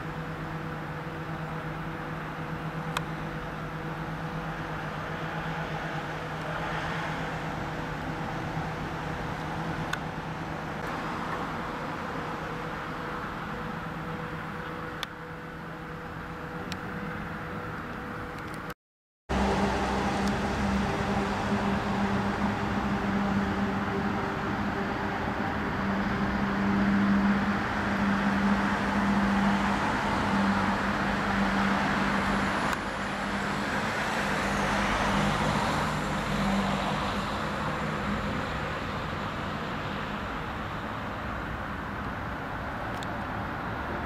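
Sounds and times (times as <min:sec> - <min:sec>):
low hum: 0:00.0 - 0:41.8
road traffic rumble: 0:00.0 - 0:44.0
vehicle passing close: 0:19.3 - 0:40.3.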